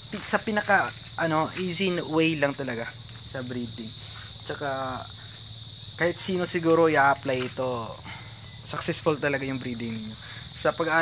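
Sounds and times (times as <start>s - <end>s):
insects chirring: 0.0s - 11.0s
man speaking: 0.1s - 5.2s, 6.0s - 11.0s.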